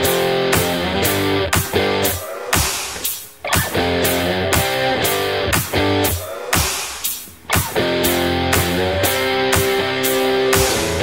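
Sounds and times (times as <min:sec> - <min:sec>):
rock music with electric guitar: 0:00.0 - 0:02.2, 0:03.4 - 0:06.2, 0:07.4 - 0:11.0.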